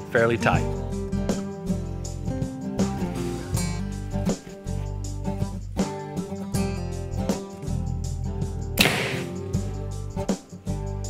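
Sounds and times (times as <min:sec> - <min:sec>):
arrow tearing through paper: 0:08.8 - 0:09.4
bow shot snap: 0:08.8 - 0:09.7.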